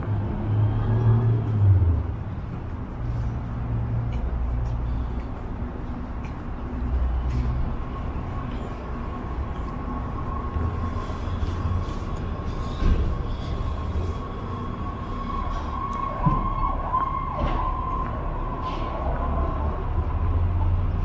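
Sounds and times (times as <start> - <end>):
street traffic rumble: 0.0 - 21.0.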